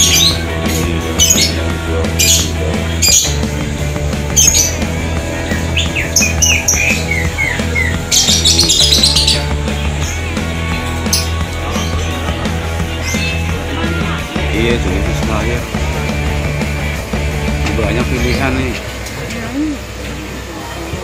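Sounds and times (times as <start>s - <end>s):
music with bass and beat: 0.0s - 21.0s
high falling chirps: 4.1s - 13.7s.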